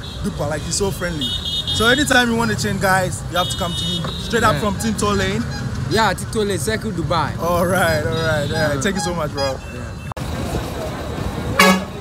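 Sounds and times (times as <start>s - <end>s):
street traffic noise: 0.0s - 12.0s
vehicle horn toot: 11.6s - 12.0s.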